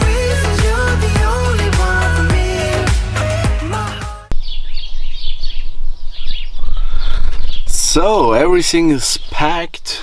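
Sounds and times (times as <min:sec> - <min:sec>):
songbirds chirping and twittering: 0:04.3 - 0:10.0.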